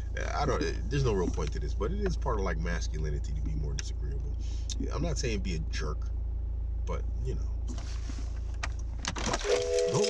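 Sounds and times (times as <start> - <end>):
low hum inside car cabin: 0.0 - 10.0.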